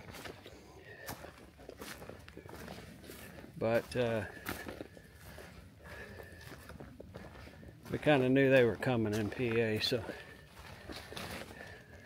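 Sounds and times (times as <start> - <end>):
footsteps on dry leaves and rocks: 0.0 - 12.0.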